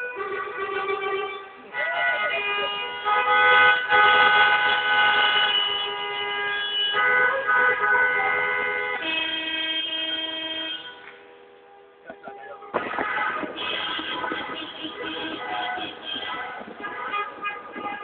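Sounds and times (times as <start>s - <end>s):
many car horns honking: 0.0s - 18.0s.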